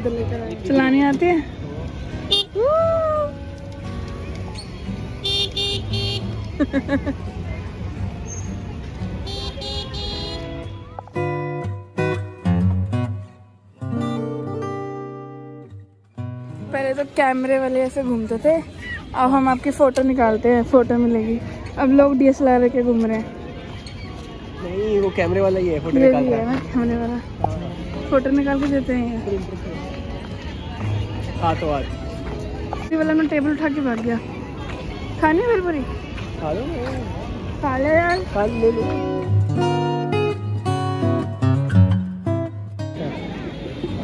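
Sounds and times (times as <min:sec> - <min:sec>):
traffic rumble: 0:00.0 - 0:14.8, 0:15.7 - 0:44.0
crowd ambience: 0:00.0 - 0:44.0.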